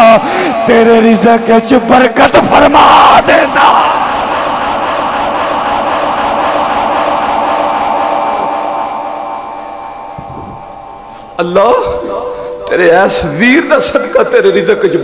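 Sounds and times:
man shouting into a microphone: 0:00.0 - 0:04.0.

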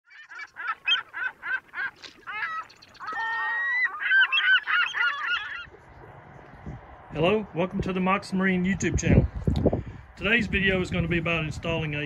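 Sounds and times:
birds calling: 0:00.1 - 0:06.6.

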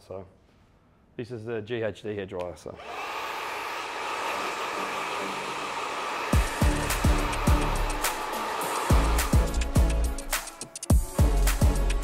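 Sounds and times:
hair dryer whirring: 0:02.8 - 0:10.6
music with heavy kick drum: 0:06.4 - 0:08.1, 0:08.9 - 0:12.0.

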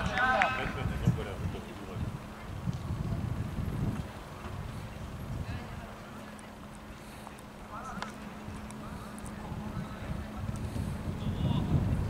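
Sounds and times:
low steady rumble and hum: 0:00.0 - 0:12.0.

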